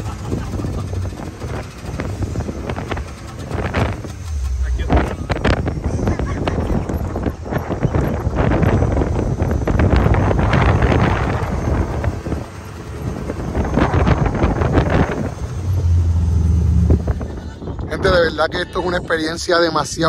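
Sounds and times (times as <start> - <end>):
off-road vehicle engine running: 0.0 - 20.0
wind buffeting microphone: 0.0 - 20.0.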